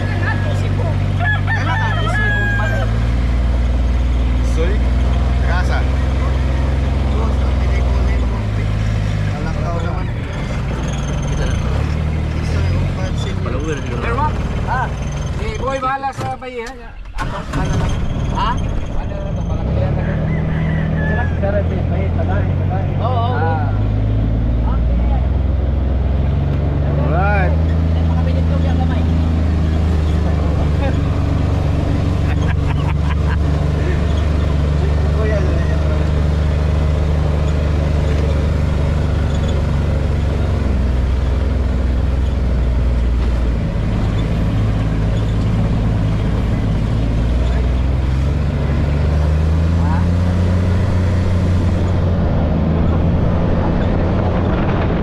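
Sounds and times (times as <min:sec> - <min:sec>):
utility vehicle engine drone: 0:00.0 - 0:55.0.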